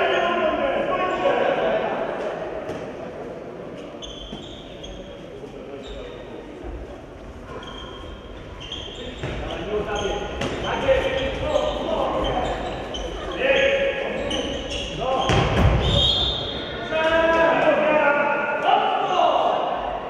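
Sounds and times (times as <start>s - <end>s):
players calling and shouting: 7.6s - 20.0s
ball bouncing on wooden court: 9.2s - 9.5s.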